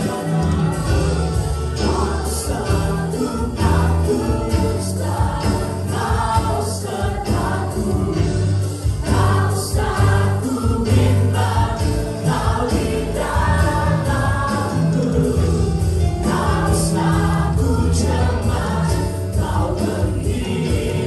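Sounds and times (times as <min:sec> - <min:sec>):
amplified singers singing together: 0:00.0 - 0:21.0
jingling percussion beat: 0:00.0 - 0:21.0
keyboard and bass line: 0:00.0 - 0:21.0.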